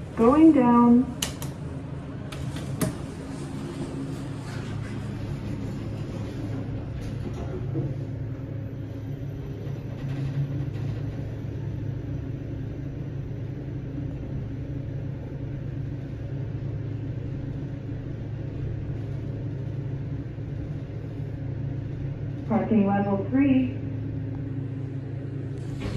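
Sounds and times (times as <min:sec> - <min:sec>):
elevator rumble and hum: 0:00.0 - 0:25.9.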